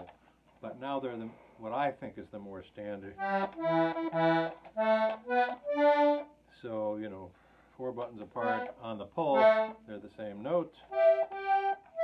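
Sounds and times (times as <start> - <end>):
button accordion notes: 3.2 - 6.3, 8.4 - 9.9, 10.9 - 12.0.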